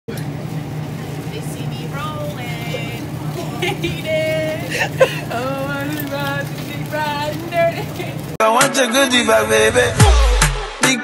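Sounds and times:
low machine hum: 0.1 - 8.4.

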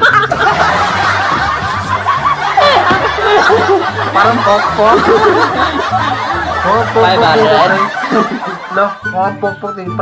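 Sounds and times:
man laughing heartily: 0.0 - 9.0.

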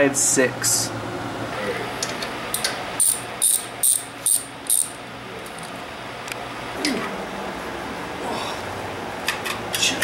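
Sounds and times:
steady low hum: 0.0 - 10.0
ratchet wrench clicking: 2.5 - 5.0.

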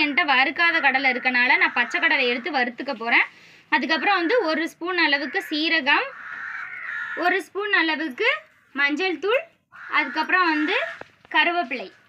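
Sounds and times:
drawn-out harsh call: 0.0 - 2.8, 5.2 - 7.4, 9.7 - 11.2
woman speaking: 0.0 - 6.2, 7.2 - 12.0.

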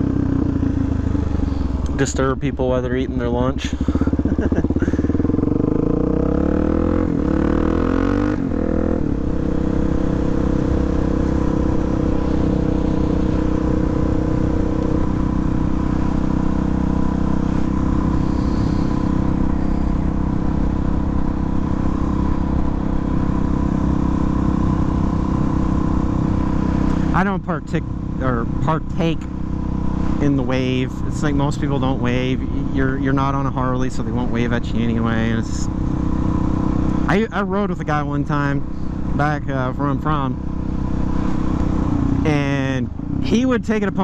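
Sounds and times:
motorcycle engine revving: 0.0 - 44.0.

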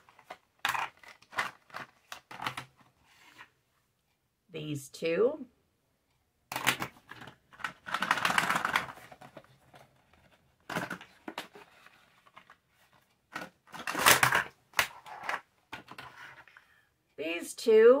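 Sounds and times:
plastic packaging rustling: 0.0 - 2.9, 6.5 - 16.6.

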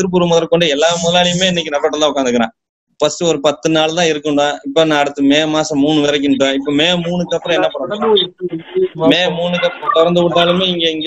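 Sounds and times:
man talking over video call: 0.0 - 11.0.

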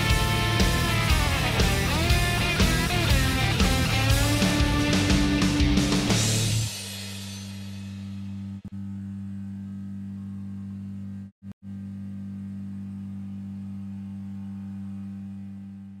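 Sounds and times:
low electrical hum: 8.0 - 16.0.

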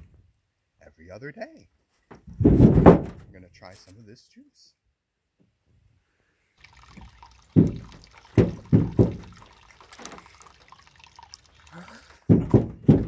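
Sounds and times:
slurping from coconut shell: 6.6 - 12.3
person gulping drink: 6.6 - 12.8.

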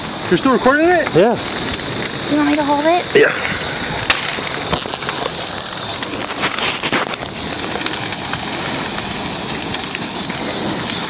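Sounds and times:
bonfire flames rushing: 0.0 - 11.0
fire cracking and popping: 0.0 - 11.0.

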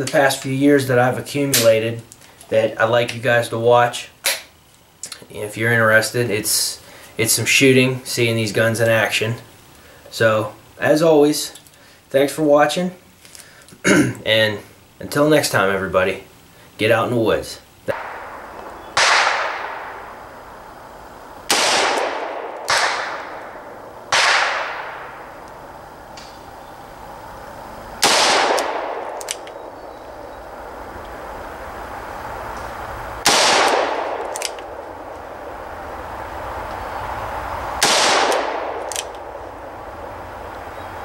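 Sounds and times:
revolver shots echoing: 17.9 - 20.4, 21.4 - 25.4, 28.0 - 29.8, 33.2 - 34.8, 37.7 - 39.4.

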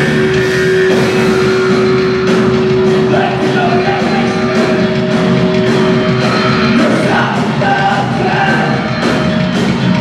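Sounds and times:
live punk rock band: 0.0 - 10.0.

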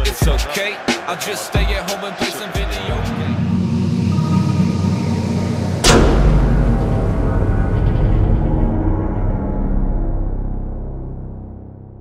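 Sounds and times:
backing music: 0.0 - 12.0
deep bass rumble: 2.9 - 12.0
whoosh and boom impact effect: 3.1 - 10.6.

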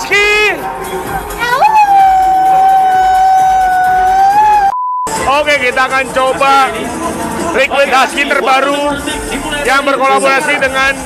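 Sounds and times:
woman howling into microphone: 1.4 - 4.8
short steady beep: 4.7 - 5.1.

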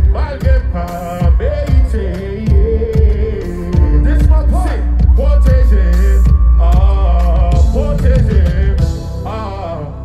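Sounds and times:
heavy bass beat with drums: 0.0 - 10.0
man singing into a microphone: 0.0 - 10.0.

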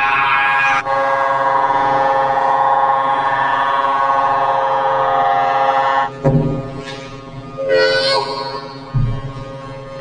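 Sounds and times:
loud horn-like drone: 0.7 - 6.2, 6.8 - 8.9.

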